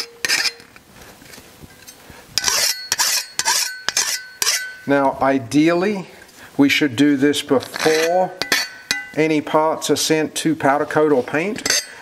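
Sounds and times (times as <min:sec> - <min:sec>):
faint metal ringing: 0:01.7 - 0:05.0, 0:07.9 - 0:09.3
file rasping on metal: 0:02.4 - 0:04.7.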